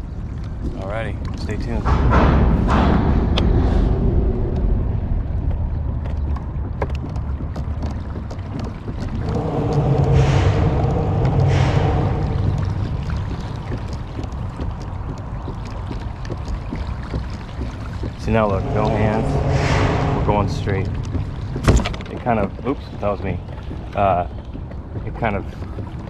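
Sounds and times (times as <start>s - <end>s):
road traffic rumble: 3.4s - 16.6s, 18.1s - 23.6s.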